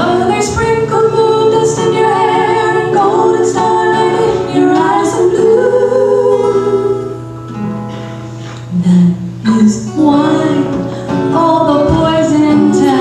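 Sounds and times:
women singing in harmony: 0.0 - 7.4, 8.7 - 13.0
acoustic guitars: 0.0 - 13.0.

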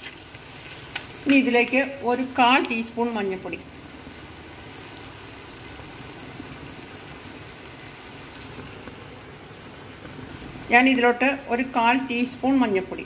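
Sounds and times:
masala sizzling in oil: 0.0 - 13.0.

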